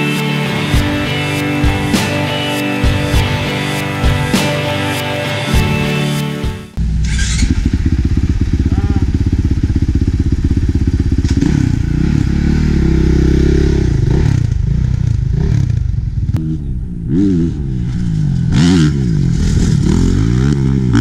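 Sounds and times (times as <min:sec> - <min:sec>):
motorcycle engine idling and revving: 0:06.7 - 0:21.0.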